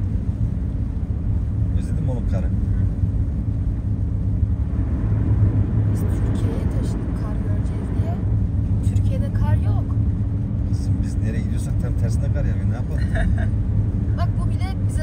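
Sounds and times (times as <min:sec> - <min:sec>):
engine and tyres rumbling on snow: 0:00.0 - 0:15.0.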